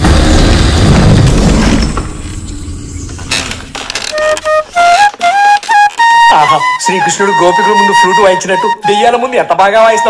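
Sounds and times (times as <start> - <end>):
deep trailer boom: 0.0 - 3.7.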